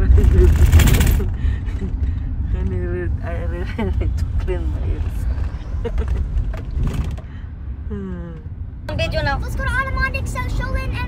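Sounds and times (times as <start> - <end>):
loud rasping rattling noise: 0.0 - 1.4
road rumble inside car: 0.0 - 11.0.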